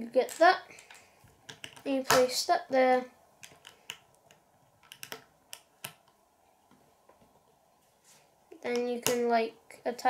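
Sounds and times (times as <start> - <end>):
plastic bricks clicking: 0.8 - 1.9, 3.4 - 6.2.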